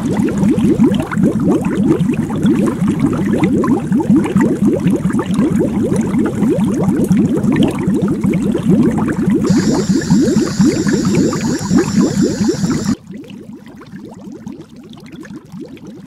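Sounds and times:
high electronic whine: 9.5s - 13.0s.

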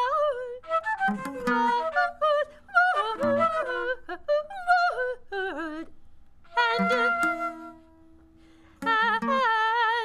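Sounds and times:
woman singing wordless phrases: 0.0s - 7.5s, 8.8s - 10.0s.

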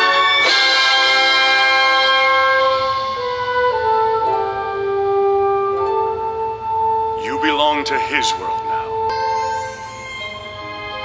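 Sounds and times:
orchestral sustained chords: 0.0s - 11.0s.

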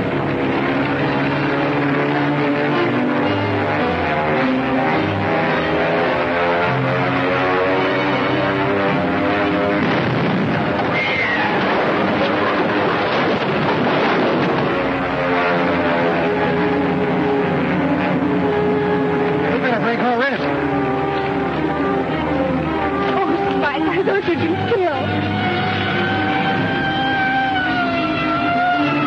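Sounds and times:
aircraft dive and bomb blast: 0.0s - 21.3s
orchestral film music: 0.0s - 29.0s.

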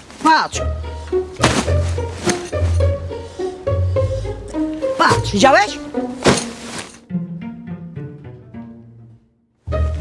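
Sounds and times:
plucked string music: 0.6s - 10.0s
tent swishing through air: 1.4s - 2.9s, 6.1s - 7.0s.

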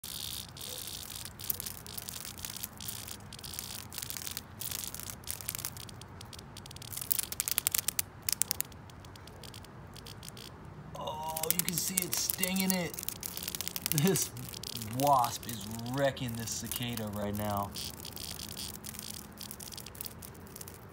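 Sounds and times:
cicada distress buzz: 0.0s - 8.0s, 9.4s - 20.9s
sharp clicks: 0.0s - 10.7s, 11.3s - 20.9s.

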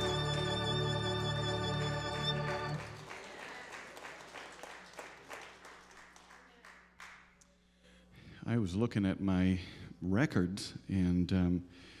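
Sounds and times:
violin piece with accompaniment: 0.0s - 3.0s
applause: 0.0s - 7.4s.

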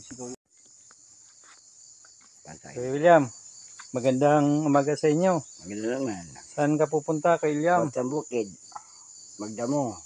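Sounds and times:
insects chirring: 0.0s - 10.0s
man's voice: 4.0s - 8.5s.

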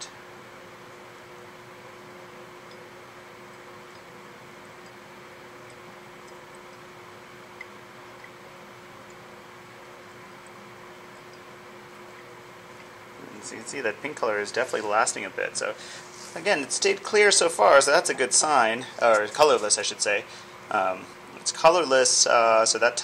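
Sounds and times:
low hum and hiss: 0.0s - 23.0s.

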